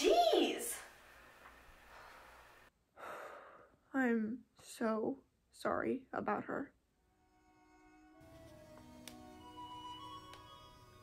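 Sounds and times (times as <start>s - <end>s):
faint room hiss: 0.0s - 2.8s
woman breathing in: 1.8s - 3.8s.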